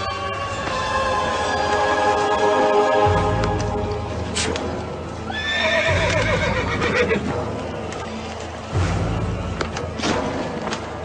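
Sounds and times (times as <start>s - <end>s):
horse whinnying: 5.3s - 7.2s.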